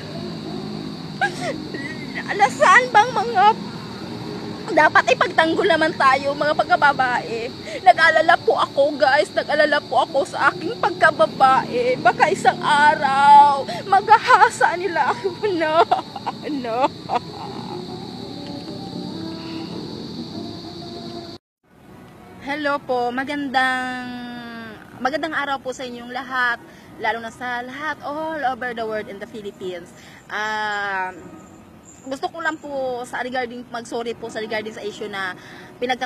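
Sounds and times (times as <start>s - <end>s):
low background hum: 0.0s - 18.6s
steady background noise: 0.0s - 36.0s
woman wailing and crying: 1.2s - 3.6s, 10.0s - 18.0s
woman's tearful speech: 1.2s - 3.6s, 4.7s - 17.8s.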